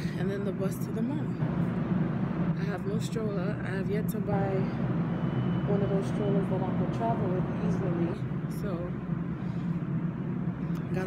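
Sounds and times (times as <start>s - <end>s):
low transit station rumble: 0.0s - 11.0s.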